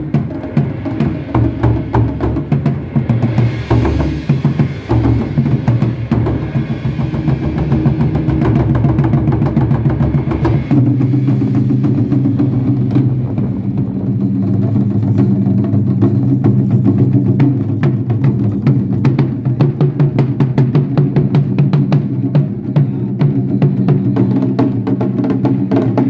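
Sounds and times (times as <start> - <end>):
barrel drums in fast rhythm: 0.0 - 26.0.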